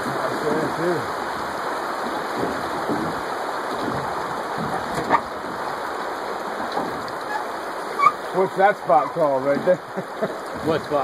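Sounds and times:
river current rushing and splashing: 0.0 - 11.0.

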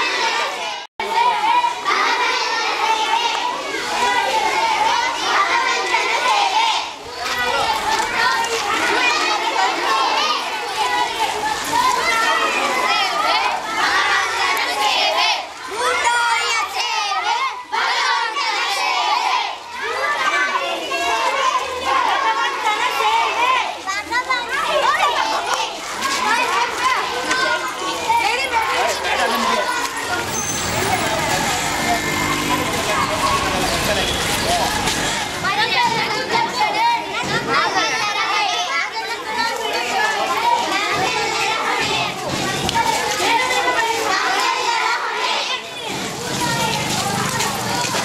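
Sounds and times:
children talking and calling out: 0.0 - 48.0.

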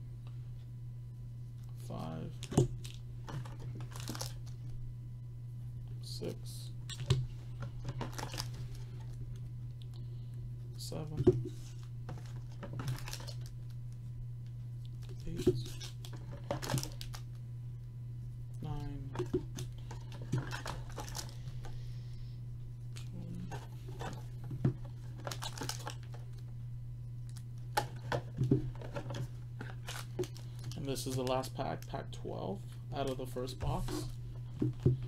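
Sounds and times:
steady low hum: 0.0 - 35.0
foil wrappers crinkling: 2.8 - 4.6, 7.8 - 9.1, 11.7 - 13.8, 14.9 - 17.4, 19.7 - 21.7, 22.9 - 26.4, 27.3 - 32.0.

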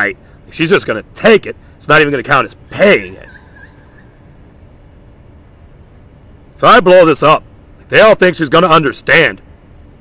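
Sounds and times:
faint hiss: 0.0 - 10.0
low rumble: 2.4 - 6.6.

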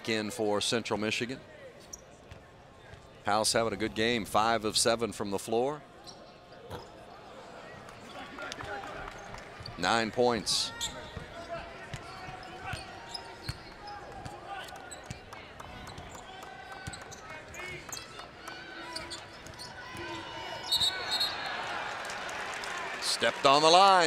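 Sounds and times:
murmur of arena crowd: 0.0 - 24.0
sneaker squeaks: 1.8 - 2.5, 6.0 - 7.0, 10.7 - 18.2, 18.8 - 21.5.

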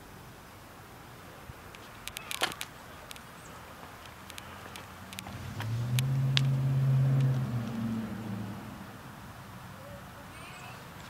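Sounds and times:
light clicks: 1.7 - 6.6
motor vehicle passing by: 2.9 - 11.0.

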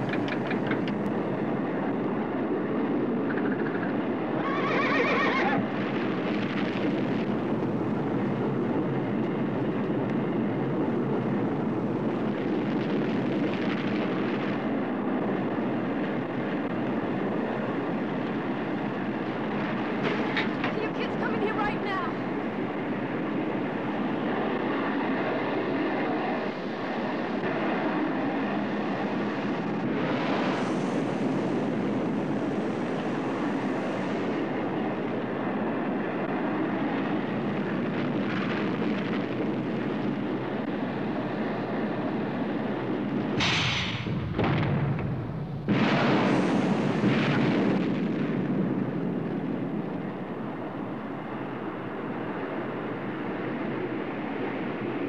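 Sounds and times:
rocket exhaust rumble: 0.0 - 55.0.

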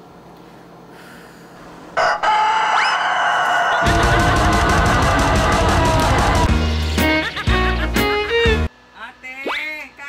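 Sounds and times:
rooster crowing: 2.0 - 6.6
music with a steady beat: 3.9 - 8.7.

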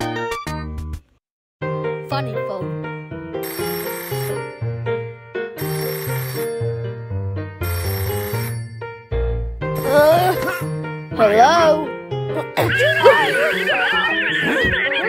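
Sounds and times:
background music: 1.6 - 15.0
rotary telephone bell ringing: 3.4 - 4.8, 5.6 - 6.9, 7.6 - 9.0.

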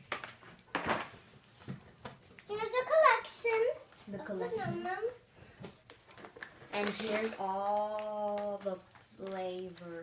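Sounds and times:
girl speaking: 2.5 - 5.3, 6.7 - 10.0
plastic packaging crinkling: 6.0 - 9.8.

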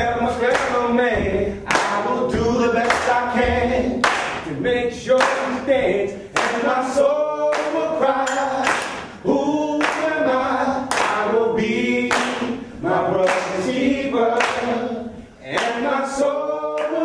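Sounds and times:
men singing a cappella: 0.0 - 17.0
hand claps: 0.4 - 0.9, 1.7 - 2.1, 2.8 - 5.7, 6.3 - 6.8, 7.5 - 9.2, 9.8 - 10.2, 10.9 - 11.3, 12.1 - 12.6, 13.2 - 13.7, 14.4 - 14.8, 15.5 - 15.9, 16.8 - 17.0.

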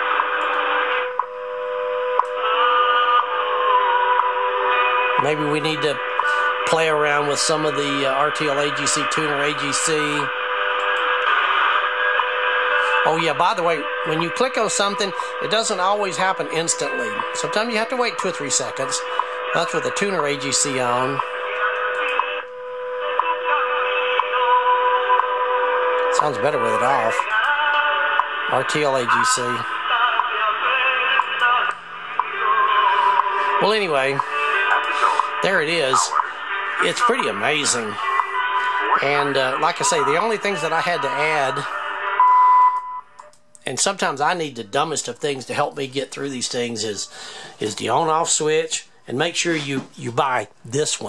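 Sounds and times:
steady radio tone: 0.0 - 27.4, 28.3 - 42.6
shortwave static: 0.0 - 42.2
radio band noise: 0.0 - 42.4
radio time ticks: 5.7 - 6.6, 19.0 - 19.4.

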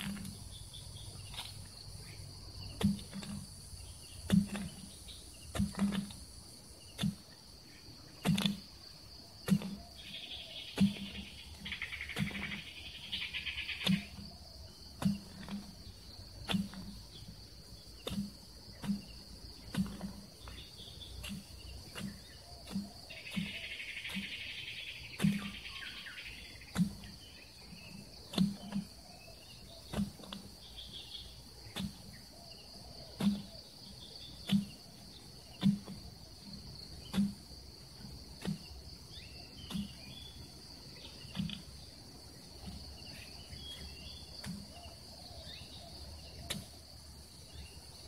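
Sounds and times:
hand tool chopping into ground: 0.0 - 1.7, 2.6 - 7.4, 8.2 - 40.5, 41.1 - 41.8, 42.5 - 48.0
hoe striking soil: 0.0 - 48.0
insects trilling: 0.0 - 48.0.

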